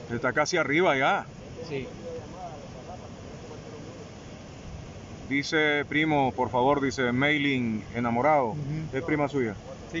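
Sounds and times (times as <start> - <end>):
faint voices: 0.0 - 10.0
flooded river rushing: 0.0 - 10.0.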